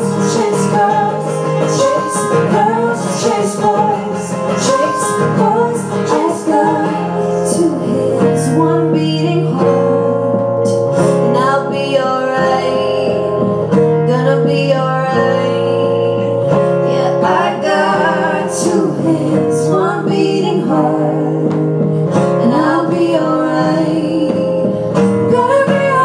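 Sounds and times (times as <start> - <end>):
guitar playing: 0.0 - 26.0
woman singing: 0.0 - 26.0.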